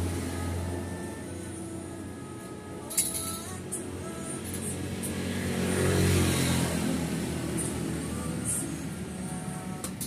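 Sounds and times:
passing vehicle engine: 0.0 - 10.0.

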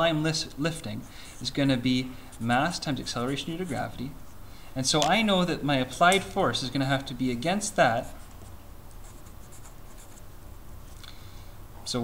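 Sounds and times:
marker scratching on paper: 2.3 - 4.0, 8.0 - 10.3.

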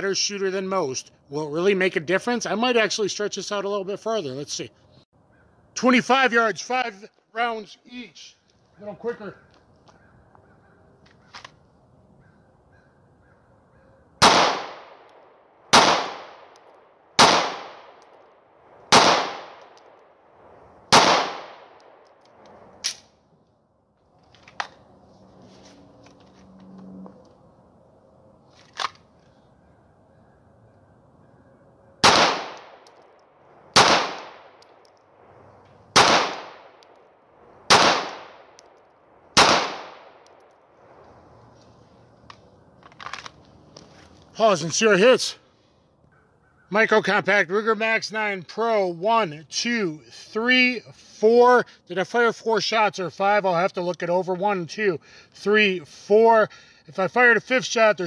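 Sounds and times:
pistol shots: 14.2 - 18.1, 18.9 - 20.0, 20.9 - 22.0, 32.0 - 33.0, 33.7 - 34.8, 35.9 - 36.9, 37.7 - 38.7, 39.3 - 40.4.

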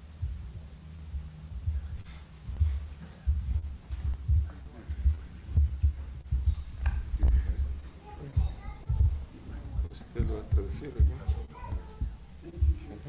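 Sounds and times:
low thumps and bumps: 0.0 - 13.0
footsteps on platform: 0.3 - 12.9
faint murmur of voices: 1.6 - 13.0.

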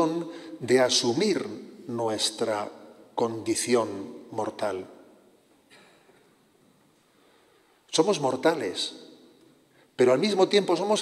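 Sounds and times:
man speaking: 0.0 - 5.1, 7.9 - 9.3, 10.0 - 11.0.

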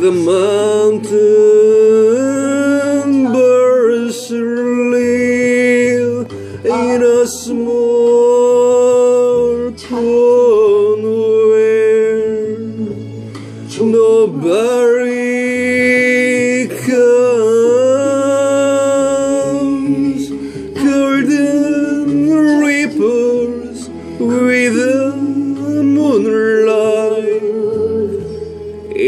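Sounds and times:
instrumental backing track: 0.0 - 29.0
man singing a slow ballad: 0.0 - 29.0.

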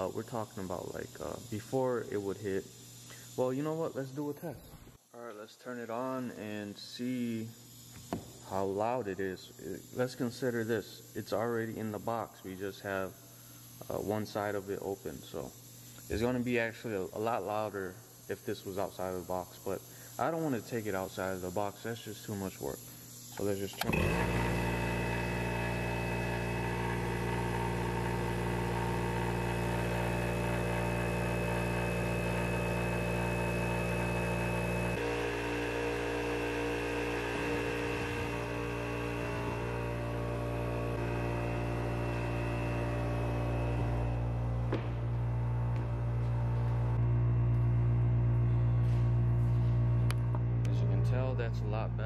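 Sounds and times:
air compressor motor hum: 0.0 - 52.0.

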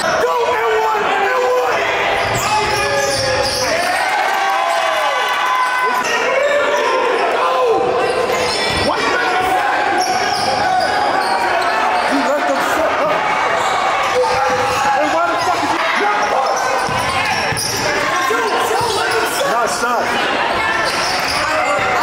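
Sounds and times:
sneakers squeaking: 2.0 - 4.2, 7.9 - 12.5, 13.1 - 19.8, 20.5 - 22.0.

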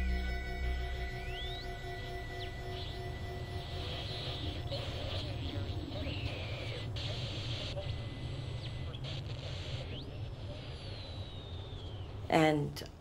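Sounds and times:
thin gliding whistling tones: 0.0 - 4.8, 9.8 - 12.3
steady low rumble: 0.0 - 6.0.

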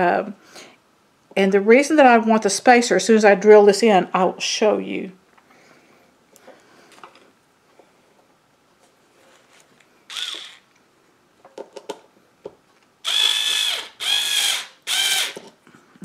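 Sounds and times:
cordless drill motor: 10.1 - 10.7, 13.0 - 15.4.

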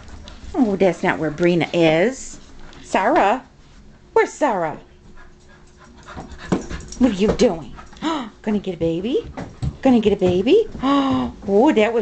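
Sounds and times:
dog panting: 0.0 - 2.9, 4.8 - 9.8.

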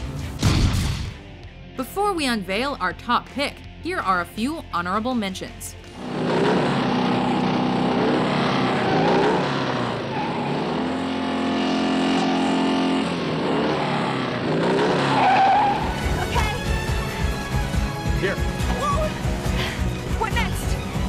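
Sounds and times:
motorcycle engines revving: 5.8 - 21.0.

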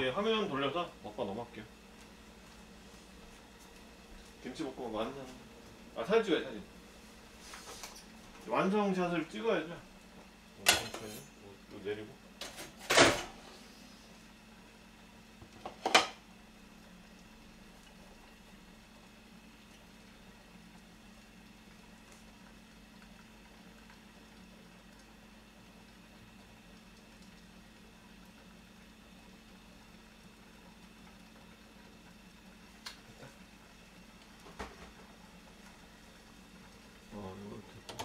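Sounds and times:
tableware clattering on stone counter: 10.7 - 11.4.

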